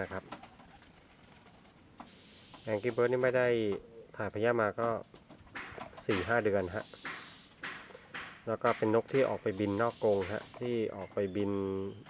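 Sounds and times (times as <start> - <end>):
pigeons cooing: 0.0 - 4.4, 5.2 - 8.4, 9.0 - 12.0
man speaking: 2.7 - 5.0, 5.8 - 6.9, 8.5 - 12.0.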